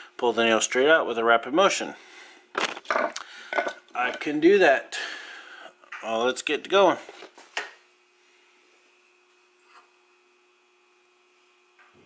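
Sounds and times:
scraping and knocking handling noises: 2.6 - 4.3.

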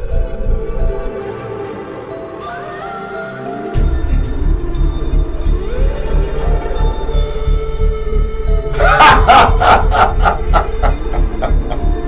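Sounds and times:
low eerie music: 0.0 - 12.0
woman cackling laugh: 8.8 - 12.0.

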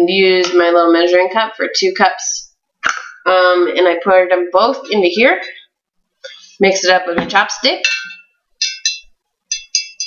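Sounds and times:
chopstick clinking in glass jar: 7.8 - 10.0.

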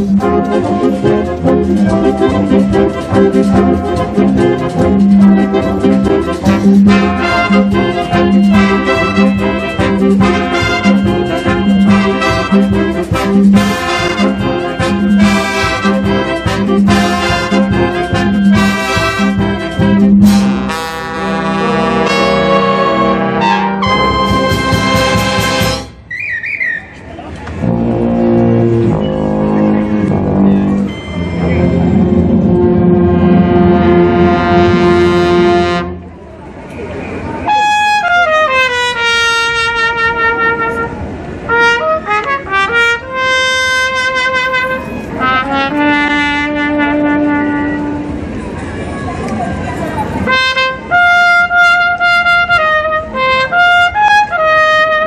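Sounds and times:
brass band chords: 0.0 - 26.1, 27.6 - 36.1, 37.4 - 48.4, 50.2 - 55.0
trumpet notes: 0.0 - 26.8, 27.6 - 36.1, 37.4 - 48.4, 50.2 - 55.0
solo trumpet with falling slide: 6.5 - 19.4, 20.2 - 26.8.

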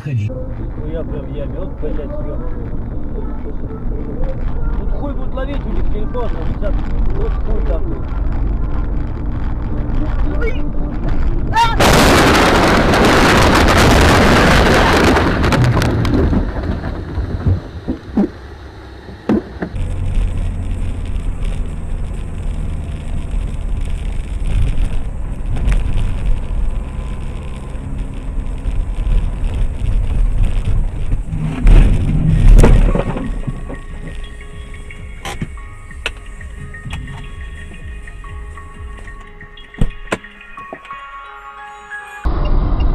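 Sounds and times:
vehicle road and engine rumble: 0.0 - 42.9
loud noisy burst: 11.1 - 34.4
sharp knocks: 19.1 - 19.8.

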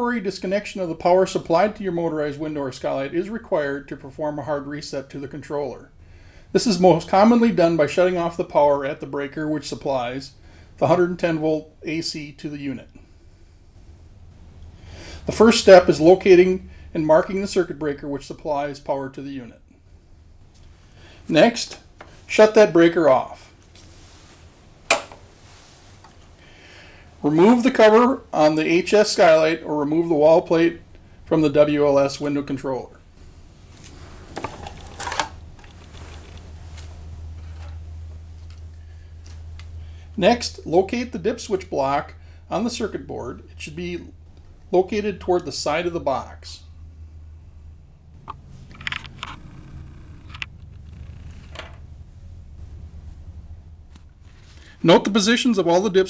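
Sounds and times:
low steady hum: 0.0 - 56.0
circuit breaker switch snap: 24.9 - 25.2
small clicks and scrapes: 48.2 - 51.8.

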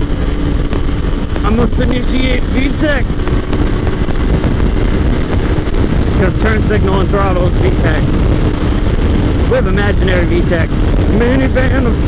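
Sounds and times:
motorcycle engine under throttle: 0.0 - 12.0
wind noise on microphone: 0.0 - 12.0.

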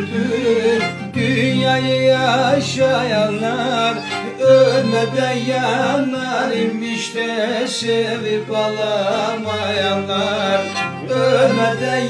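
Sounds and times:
bowed string instrument: 0.0 - 12.0
classical guitar: 0.0 - 12.0
man singing folk melody: 0.0 - 12.0.

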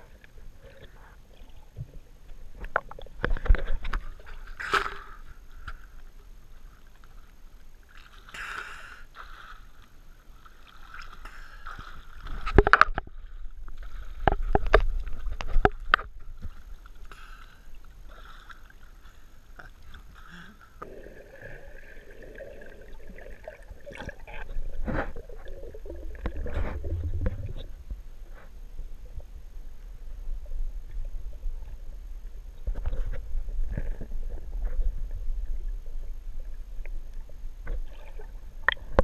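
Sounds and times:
water sloshing and lapping: 0.0 - 29.3, 30.8 - 39.0.

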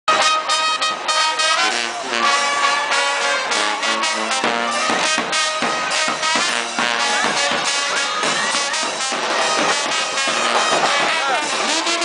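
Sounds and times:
brass band music: 0.0 - 12.0.

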